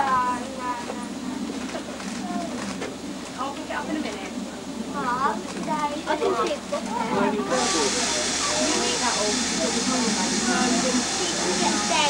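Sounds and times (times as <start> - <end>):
people talking: 0.0 - 12.0
steam train hissing steam: 7.2 - 12.0.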